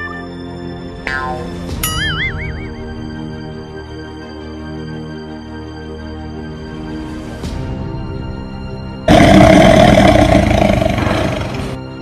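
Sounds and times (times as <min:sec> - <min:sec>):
background music: 0:00.0 - 0:12.0
loud roaring burst: 0:09.1 - 0:11.8.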